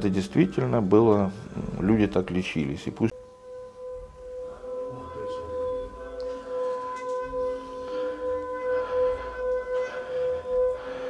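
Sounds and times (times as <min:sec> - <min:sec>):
singing bowl tone: 0:01.4 - 0:11.0.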